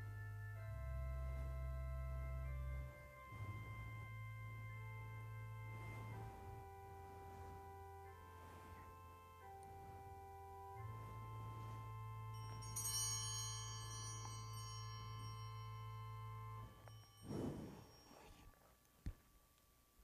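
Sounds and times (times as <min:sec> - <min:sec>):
pipe organ chords: 0:00.0 - 0:17.8.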